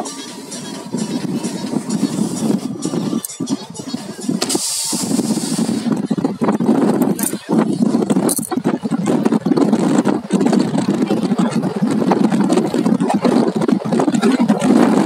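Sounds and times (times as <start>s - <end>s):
vehicle road and engine noise: 0.0s - 15.0s
wind buffeting microphone: 0.0s - 15.0s.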